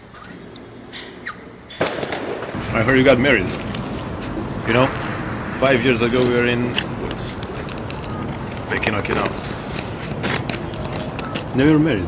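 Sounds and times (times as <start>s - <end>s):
outdoor background noise: 0.0s - 12.0s
sudden sharp crack: 1.8s - 3.9s
man's voice: 4.6s - 7.4s.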